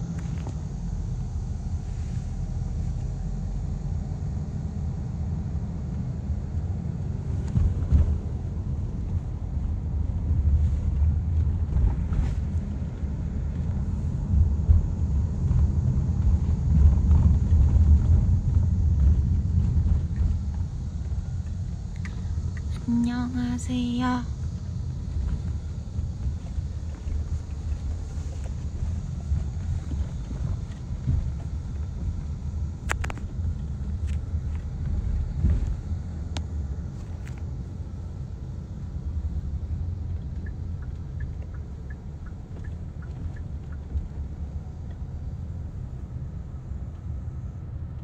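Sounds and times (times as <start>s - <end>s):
car cabin road rumble: 0.0s - 48.0s.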